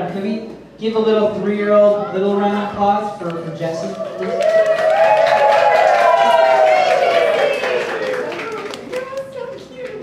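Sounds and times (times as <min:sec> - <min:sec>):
audience clapping: 0:03.9 - 0:10.0.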